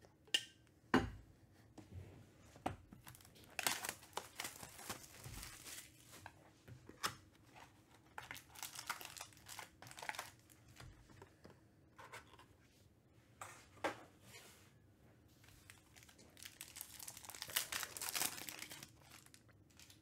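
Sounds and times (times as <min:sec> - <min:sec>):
cardboard and foil packs handled: 0:03.0 - 0:12.4, 0:15.5 - 0:20.0.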